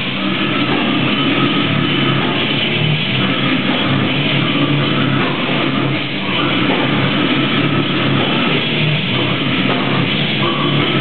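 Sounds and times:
distorted electric guitars: 0.0s - 11.0s
drums: 0.0s - 11.0s.

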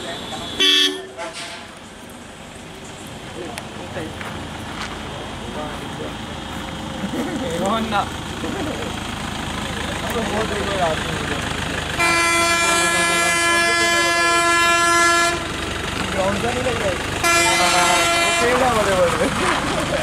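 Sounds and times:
heavy vehicle horn blast: 0.0s - 1.8s, 11.9s - 15.6s, 17.2s - 19.2s
traffic rumble: 0.0s - 20.0s
people laughing and talking: 5.5s - 11.5s, 17.8s - 20.0s.

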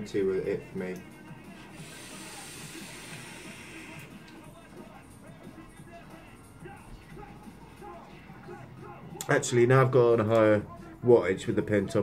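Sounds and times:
faint background music: 0.0s - 12.0s
e-cigarette hiss: 1.6s - 4.3s.

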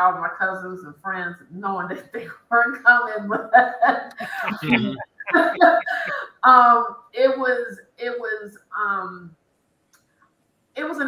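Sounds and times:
people laughing: 3.6s - 6.2s.

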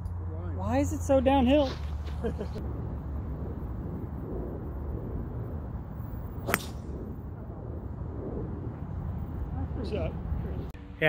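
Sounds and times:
wind rumble on microphone: 1.9s - 10.8s
golf club striking ball: 6.4s - 6.9s.

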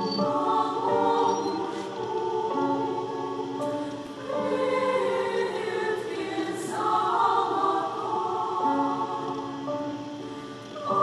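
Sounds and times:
choir singing chords: 0.0s - 11.0s.

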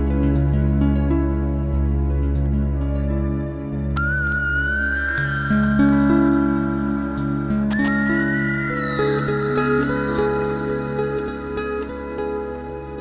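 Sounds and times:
slow meditative harp music: 0.0s - 13.0s
high sliding tone: 4.0s - 12.2s.

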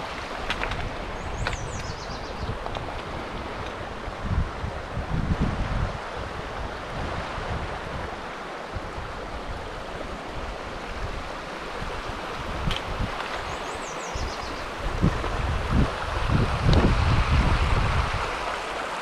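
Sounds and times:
wind buffeting microphone: 0.0s - 18.8s
creek flowing over rocks: 0.0s - 19.0s.

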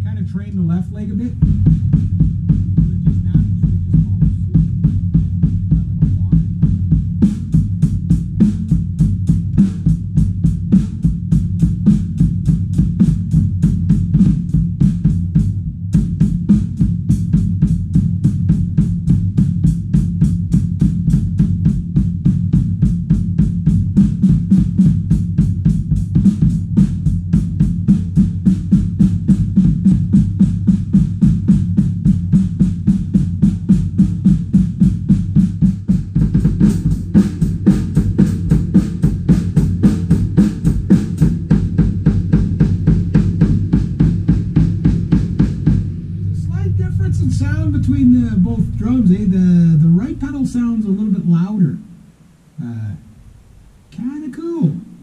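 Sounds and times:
fast kick drum strokes: 0.0s - 55.0s.

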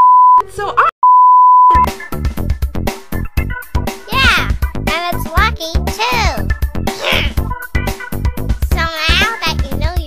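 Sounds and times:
censor bleep: 0.0s - 0.4s, 1.0s - 1.9s
cartoon voice: 4.1s - 4.6s, 6.0s - 7.4s.

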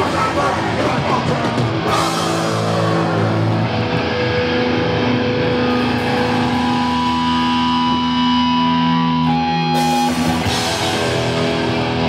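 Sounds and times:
bass guitar: 0.0s - 12.0s
distorted electric guitars: 0.0s - 12.0s.

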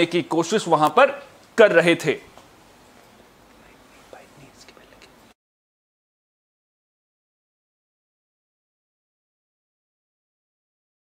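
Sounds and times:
low microphone hiss: 0.0s - 5.4s.

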